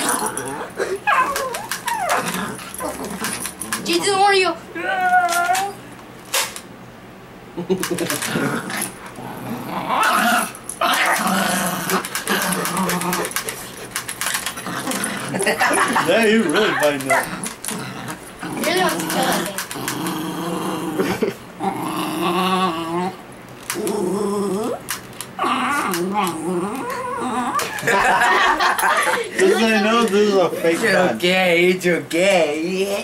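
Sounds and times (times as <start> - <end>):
small dog whining: 0.0 - 3.2, 4.7 - 5.8, 24.5 - 27.7
dog growling: 0.0 - 3.9, 8.0 - 28.3.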